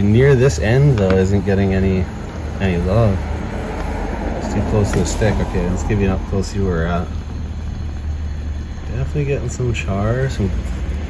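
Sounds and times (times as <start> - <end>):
gas flames burning: 0.0 - 11.0.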